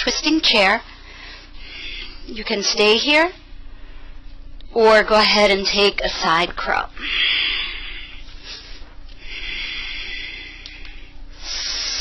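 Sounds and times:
person breathing: 0.9s - 2.3s, 3.6s - 4.4s, 7.0s - 12.0s.

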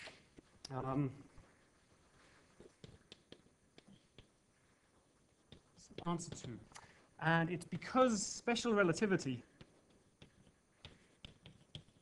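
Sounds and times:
chalk tapping on blackboard: 2.6s - 4.4s, 5.3s - 6.6s, 9.4s - 12.0s.

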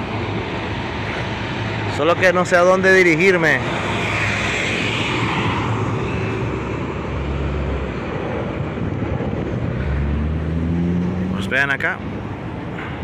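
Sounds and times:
road hiss: 0.0s - 2.0s
engine rumble: 0.0s - 13.0s.

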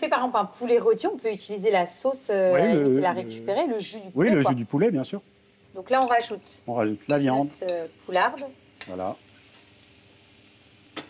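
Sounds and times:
meat and vegetables sizzling in a pan: 0.0s - 11.0s.

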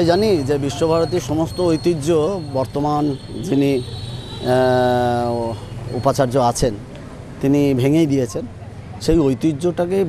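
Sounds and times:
man speaking: 0.0s - 6.8s, 7.4s - 10.0s.

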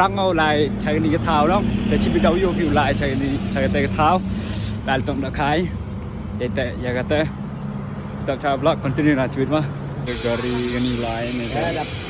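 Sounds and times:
man talking: 0.0s - 7.4s, 8.2s - 12.0s.

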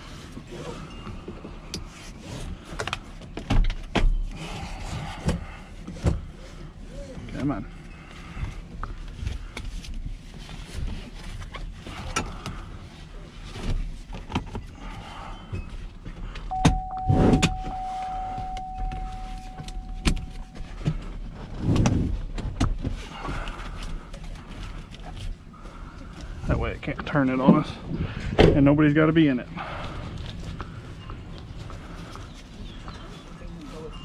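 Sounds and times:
seat belt webbing rustling: 0.0s - 27.0s
steady single tone: 16.5s - 21.2s.

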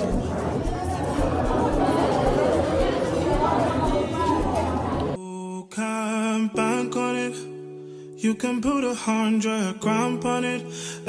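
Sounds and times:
background music with steady beat: 0.0s - 5.2s
chatter of many diners: 0.0s - 5.2s.

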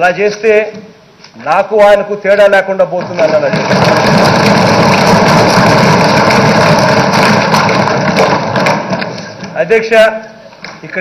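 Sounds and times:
hands thumping on wooden desks: 3.0s - 9.6s.

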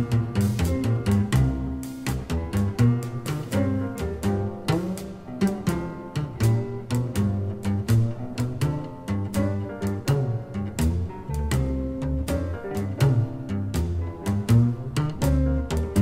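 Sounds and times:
drums keeping a steady beat: 0.0s - 16.0s
piano: 0.0s - 16.0s
upright bass: 0.0s - 16.0s.

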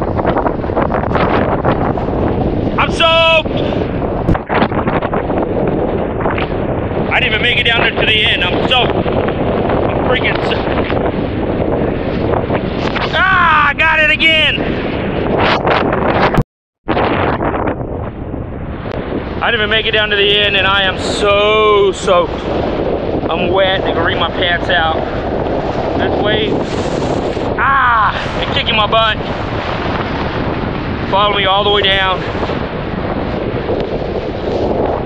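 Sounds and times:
strong wind buffeting microphone: 0.0s - 35.0s.

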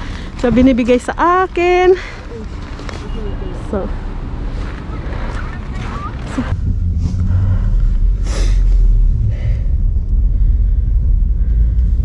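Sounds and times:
car engine rumble from inside: 0.0s - 12.0s
outdoor street noise: 0.0s - 12.0s.

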